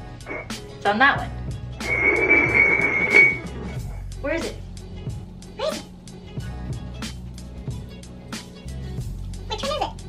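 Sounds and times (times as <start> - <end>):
background music: 0.0 - 10.0
ceramic mugs scraping on wood floor: 1.8 - 3.4.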